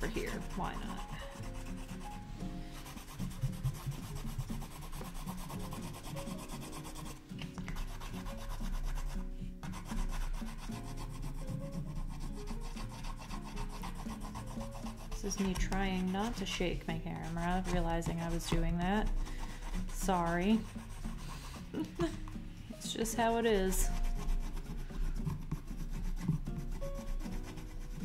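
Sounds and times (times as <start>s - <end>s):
colored pencil scratching on paper: 0.0s - 28.0s.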